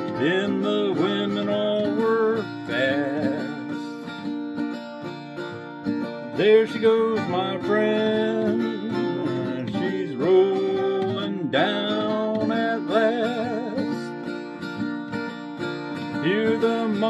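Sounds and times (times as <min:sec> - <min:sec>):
man singing: 0:00.0 - 0:04.1, 0:06.2 - 0:14.3, 0:16.0 - 0:17.0
acoustic guitar strumming: 0:00.0 - 0:17.0.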